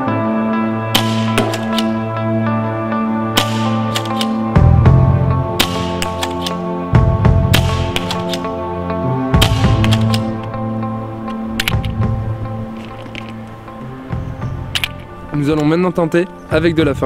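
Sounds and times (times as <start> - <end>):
background music with beat: 0.0 - 17.0
paintball marker firing: 0.9 - 2.0, 3.3 - 4.5, 5.6 - 6.7, 7.5 - 8.5, 9.4 - 10.5
paintball marker clicks: 3.9 - 4.4, 5.6 - 6.6, 7.6 - 8.5, 9.5 - 10.6.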